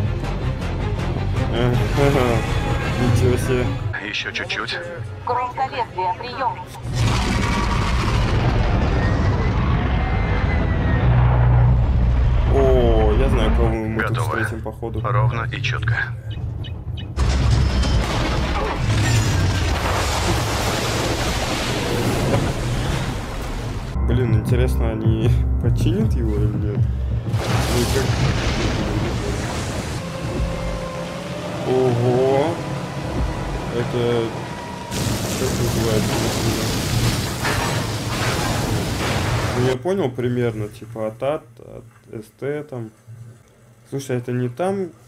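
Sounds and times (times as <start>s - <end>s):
heavy crash: 6.8s - 13.7s, 17.2s - 24.0s, 27.3s - 30.0s, 34.9s - 39.8s
rain: 19.4s - 24.0s, 27.4s - 39.8s
water pouring off a hull: 19.6s - 24.0s, 27.3s - 30.0s, 34.9s - 39.8s.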